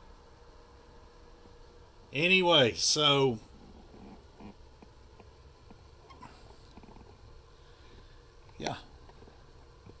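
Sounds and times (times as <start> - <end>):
faint low hum: 0.0 - 10.0
soft irregular ticks: 3.6 - 10.0.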